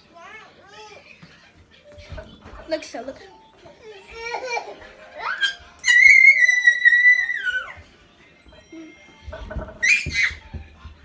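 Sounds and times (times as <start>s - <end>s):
child squealing: 5.3s - 7.8s, 9.8s - 10.4s.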